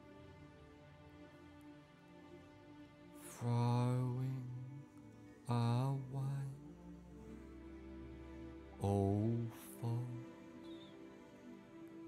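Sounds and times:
low chant-like sustained note: 0.0 - 12.0
quiet steady music backing: 0.0 - 12.0.

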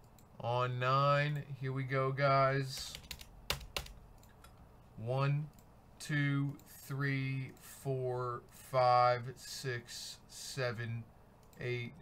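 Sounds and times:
computer keyboard keys clicking: 2.8 - 4.5.

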